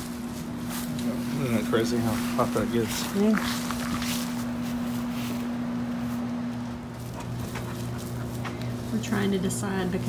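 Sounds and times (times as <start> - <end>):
machine electric hum: 0.0 - 10.0
soft rustles: 2.0 - 9.0.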